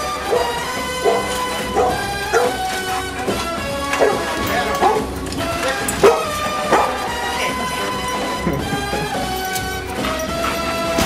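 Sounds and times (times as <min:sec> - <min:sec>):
pop music: 0:00.0 - 0:11.0
dog barking: 0:00.1 - 0:07.3.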